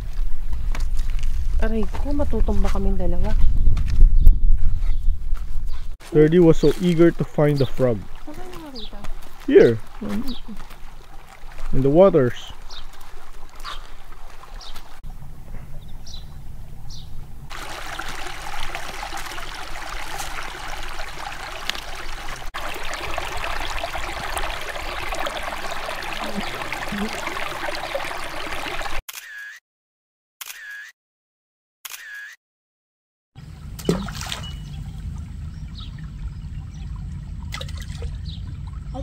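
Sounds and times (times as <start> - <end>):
stream trickling over rocks: 6.1 - 15.0, 17.5 - 29.0.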